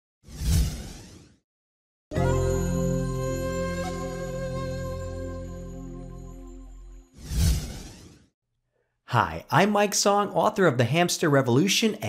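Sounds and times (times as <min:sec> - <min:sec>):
whoosh transition effect: 0:00.3 - 0:01.4, 0:07.1 - 0:08.3.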